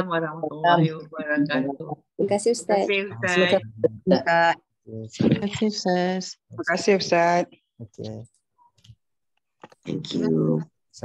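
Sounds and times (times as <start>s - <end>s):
people speaking: 0.0s - 8.3s, 9.9s - 11.0s.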